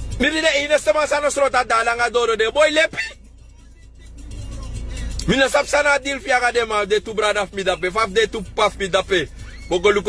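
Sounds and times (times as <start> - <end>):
car rumble inside cabin: 0.0 - 10.0.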